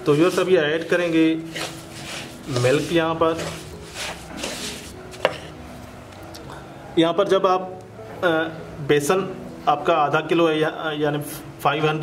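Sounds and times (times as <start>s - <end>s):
wooden spatula scraping a pan: 0.0s - 5.6s.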